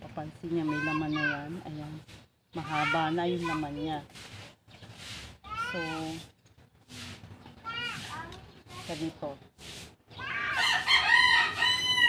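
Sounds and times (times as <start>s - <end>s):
woman speaking: 0.0s - 4.1s, 5.6s - 6.3s, 8.7s - 9.5s
cat meowing: 10.2s - 10.6s.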